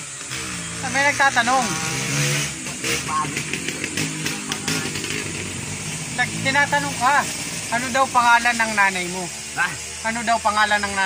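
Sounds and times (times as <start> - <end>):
small engine running: 0.0 - 11.0
indistinct talking: 2.6 - 11.0.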